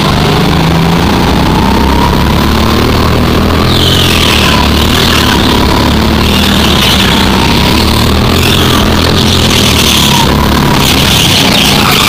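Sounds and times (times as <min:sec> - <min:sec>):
go-kart engine running hard: 0:00.0 - 0:12.0.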